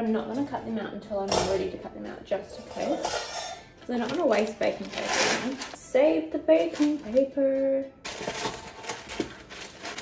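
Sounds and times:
baking paper rustling and crinkling: 3.9 - 5.8, 6.6 - 7.3, 8.1 - 10.0.

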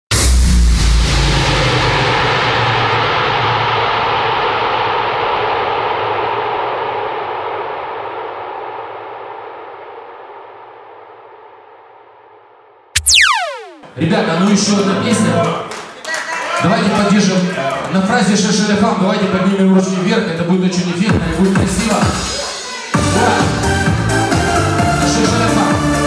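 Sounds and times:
sharp hit with falling pitch sweep: 13.0 - 14.0.

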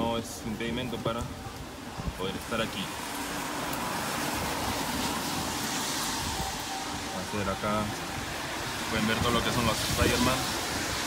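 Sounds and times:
traffic on wet road: 0.0 - 11.0.

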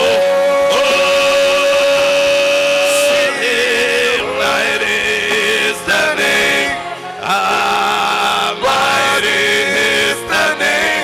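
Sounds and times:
amplified worship singing: 0.0 - 11.0.

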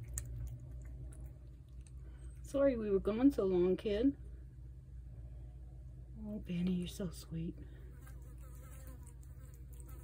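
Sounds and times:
cat chewing wet food: 0.0 - 2.4
low steady rumble: 0.0 - 8.5.

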